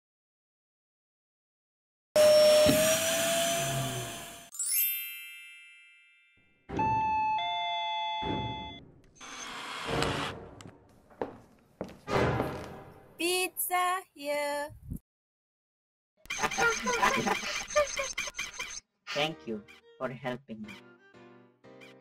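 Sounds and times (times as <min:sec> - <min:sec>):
two-note doorbell chime: 0:04.6 - 0:08.8.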